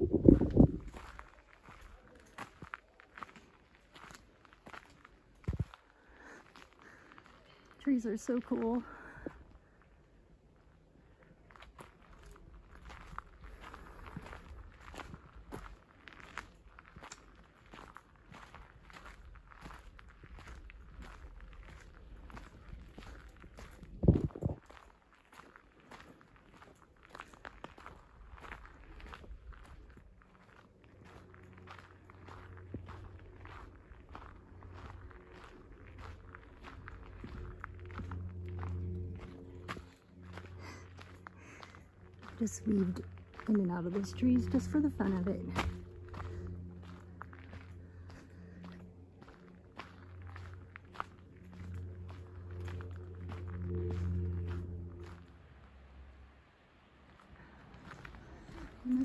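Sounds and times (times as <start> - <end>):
footsteps on dirt trail: 0.0 - 56.3, 56.9 - 59.0
low hum: 0.0 - 59.0.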